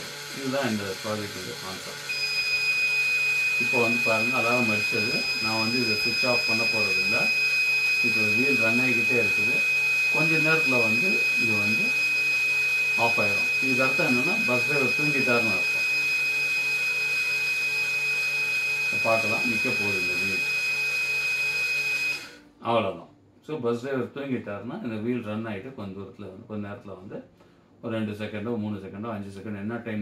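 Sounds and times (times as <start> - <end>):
high-pitched electronic buzzer tone: 2.1 - 20.7.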